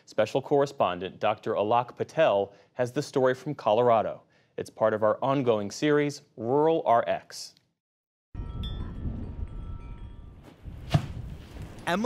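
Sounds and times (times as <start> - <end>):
metal wind chimes ringing: 8.4 - 10.4
wind rumble on microphone: 8.4 - 11.9.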